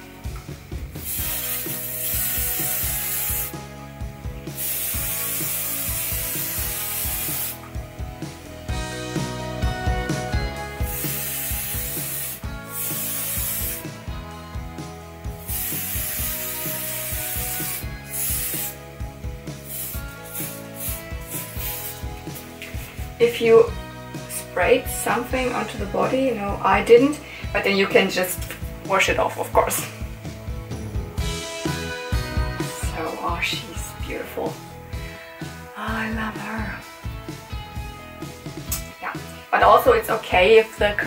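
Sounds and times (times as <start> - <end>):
aerosol can spraying: 0.8 - 3.7, 4.5 - 7.7, 10.4 - 14.2, 15.4 - 23.2.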